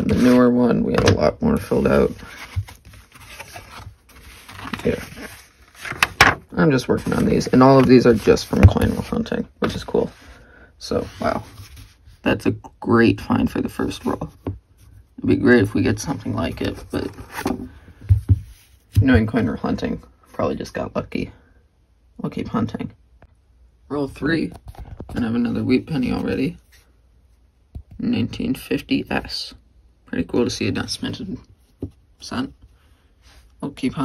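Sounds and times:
card and paper rustling: 0.0 - 0.4, 1.0 - 10.2.

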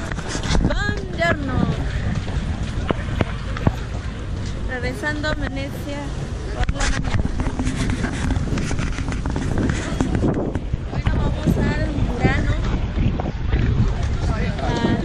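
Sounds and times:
voices of passers-by: 0.0 - 15.0
wind buffeting microphone: 0.0 - 15.0.

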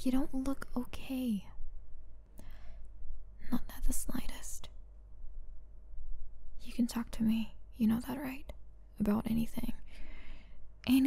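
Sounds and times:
woman whispering: 3.4 - 4.7, 6.6 - 9.8.

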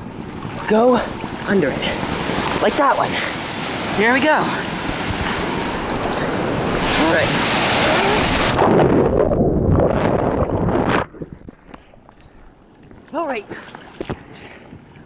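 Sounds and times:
surf rushing and splashing: 0.0 - 11.4.

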